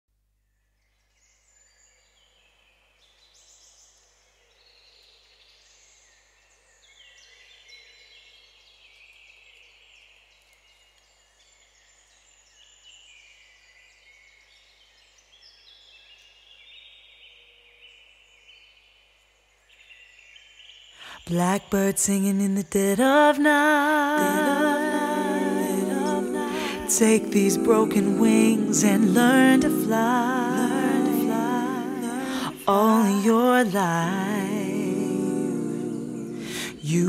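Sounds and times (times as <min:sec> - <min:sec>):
faint birdsong chirps: 0:00.3 - 0:21.4.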